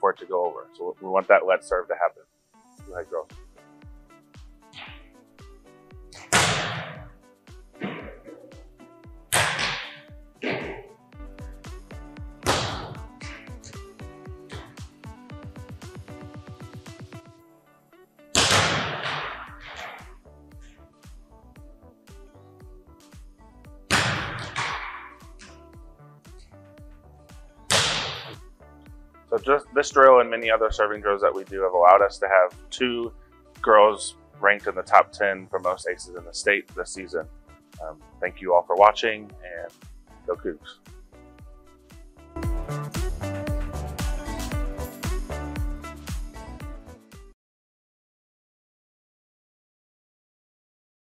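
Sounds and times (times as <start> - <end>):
background music with steady beat: 0.0 - 47.4
hand smacking volleyball: 4.8 - 5.1, 6.1 - 7.2, 9.3 - 10.9, 12.4 - 13.8, 23.9 - 25.6, 27.7 - 28.4
ball landing: 6.1 - 7.2, 9.4 - 10.9, 12.4 - 13.0, 23.9 - 25.5, 27.7 - 28.4.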